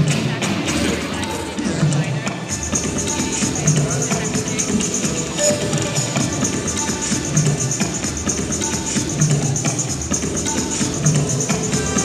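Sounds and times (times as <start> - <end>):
shaker-like percussion: 0.0 - 12.0.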